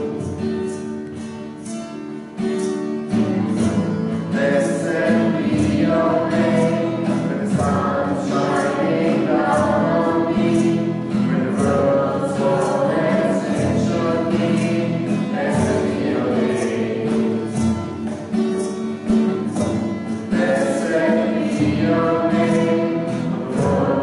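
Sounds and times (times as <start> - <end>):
acoustic guitar strumming: 0.0 - 24.0
group singing worship song: 4.1 - 18.4, 19.4 - 24.0.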